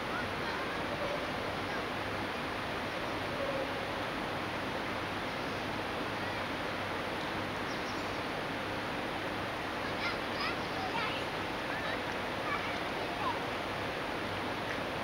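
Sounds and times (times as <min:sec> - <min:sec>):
rushing water: 0:00.0 - 0:15.0.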